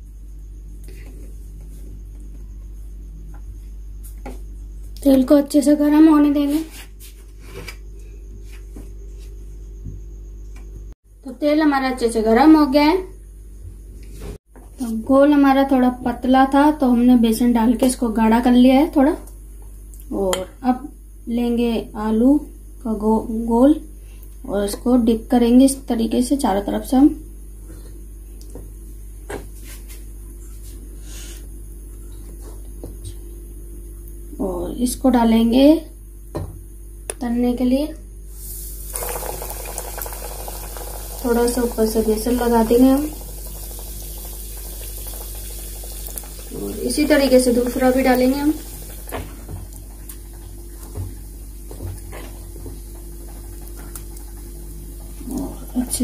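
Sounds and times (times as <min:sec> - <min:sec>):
electrical mains hum: 0:00.0 - 0:56.0
food sizzling in hot oil: 0:38.3 - 0:56.0.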